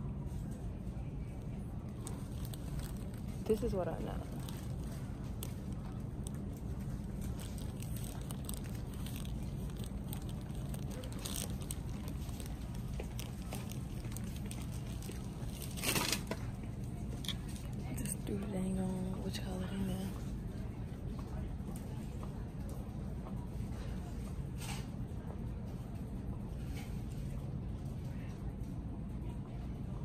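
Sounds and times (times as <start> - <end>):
low supermarket hum: 0.0 - 30.0
rustling: 1.9 - 16.4.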